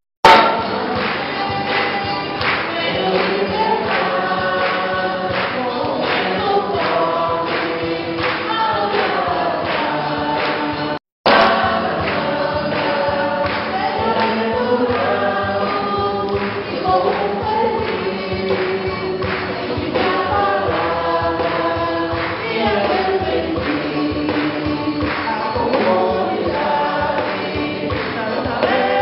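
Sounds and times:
steady beat: 0.2s - 1.7s
choir singing a hymn: 0.3s - 29.0s.

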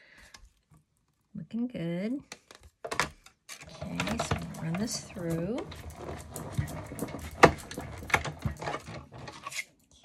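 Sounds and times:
die-cutting machine grinding: 3.7s - 9.6s.

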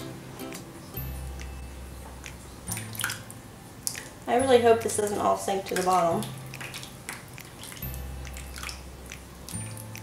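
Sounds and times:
faint low bass music: 0.0s - 10.0s
soap batter glopping and splatting: 1.4s - 10.0s.

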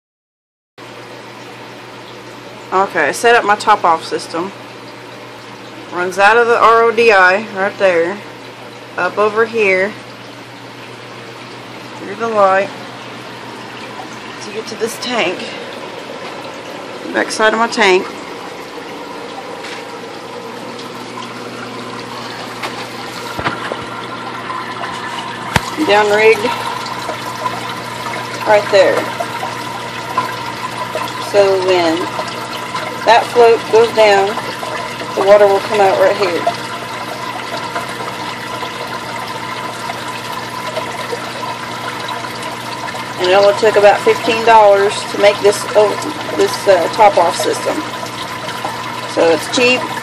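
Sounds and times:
low pump hum: 0.8s - 50.0s
water running and splashing: 0.8s - 50.0s.

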